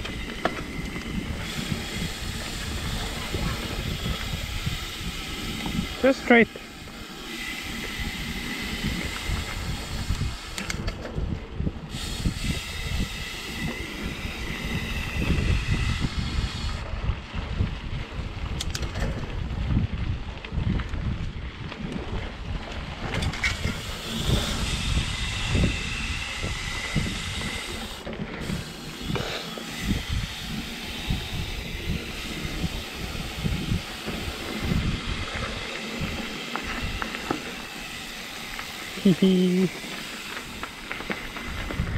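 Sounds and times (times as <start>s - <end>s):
bike rattling over bumps: 0.0s - 39.0s, 39.6s - 41.9s
tyres rolling over dirt: 0.0s - 41.9s
wind on microphone: 0.0s - 41.9s.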